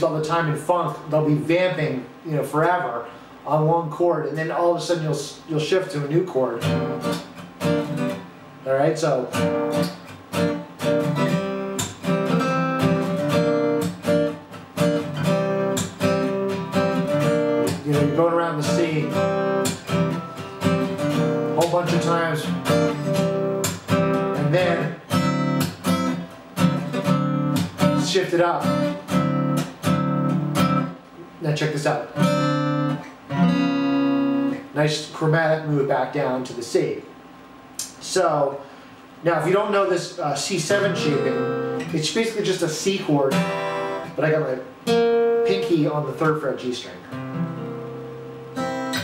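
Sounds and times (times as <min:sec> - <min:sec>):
acoustic guitar strummed: 0:05.6 - 0:34.8, 0:40.4 - 0:49.0.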